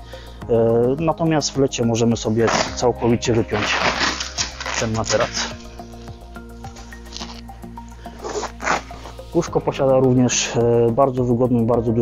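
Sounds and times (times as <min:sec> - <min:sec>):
background music: 0:00.0 - 0:12.0
fabric rustling: 0:02.4 - 0:09.4.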